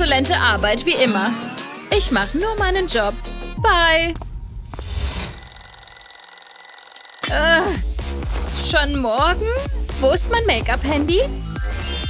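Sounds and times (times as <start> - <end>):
alarm clock bell ringing: 4.9 - 7.4.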